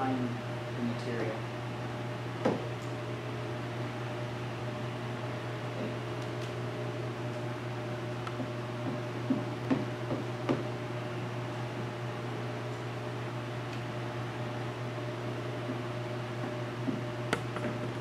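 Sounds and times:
steady machine hum: 0.0 - 18.0.

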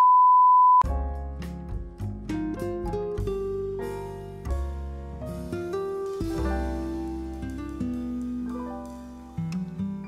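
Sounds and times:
steady test tone beep: 0.0 - 0.8
plucked background music: 0.8 - 10.0.

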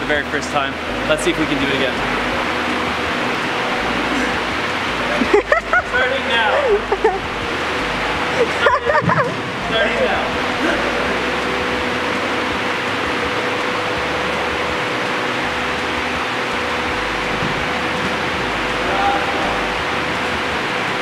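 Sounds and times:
steady rushing noise: 0.0 - 21.0.

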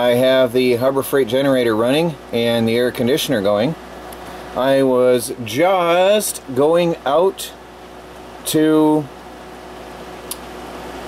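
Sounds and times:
portable generator humming: 0.0 - 11.0
short click: 10.3 - 10.5.

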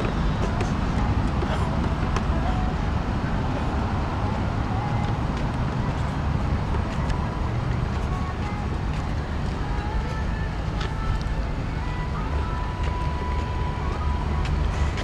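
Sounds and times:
indistinct voices: 0.0 - 15.0
road traffic rumble: 0.0 - 15.0.

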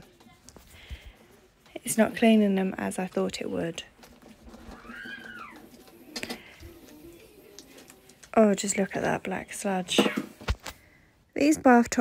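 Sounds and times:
handling of vinyl toy: 0.0 - 8.4.

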